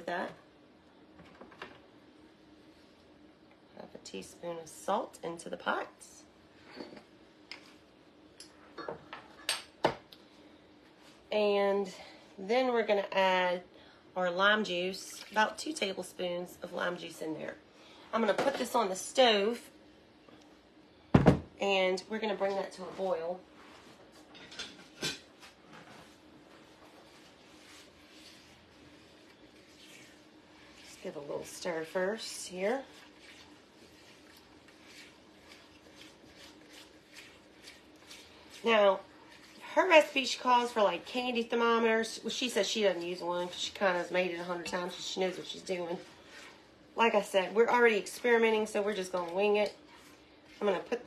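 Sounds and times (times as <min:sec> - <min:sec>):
faint steady hum: 0:00.0 - 0:51.0.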